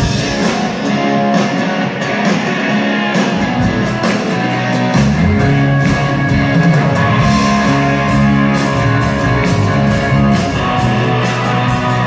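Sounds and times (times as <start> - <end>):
electric guitar: 0.0 - 12.0
steady drum beat: 0.0 - 12.0.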